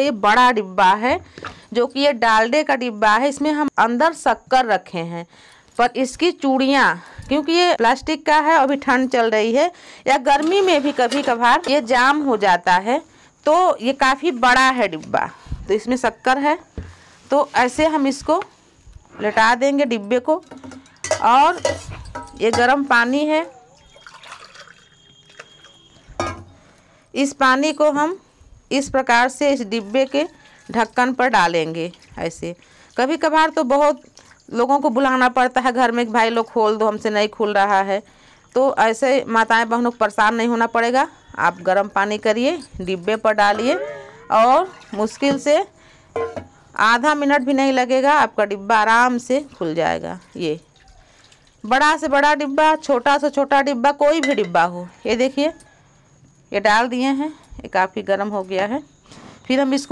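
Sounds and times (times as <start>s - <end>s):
woman speaking: 0.0s - 16.7s, 17.3s - 18.5s, 19.2s - 20.4s, 21.1s - 21.7s, 22.4s - 23.6s, 38.6s - 45.7s, 46.8s - 50.6s, 51.7s - 55.6s, 56.6s - 58.9s, 59.5s - 59.9s
steel cup knocking on tray: 46.2s - 46.6s, 54.2s - 54.6s.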